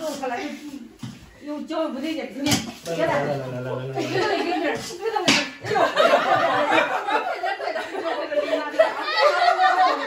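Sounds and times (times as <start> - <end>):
people laughing and chattering: 2.9 - 10.0.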